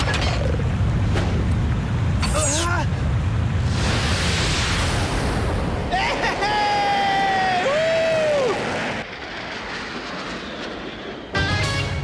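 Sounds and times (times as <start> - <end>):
jet-like rushing whoosh: 3.6 - 5.9
score music: 11.4 - 12.0.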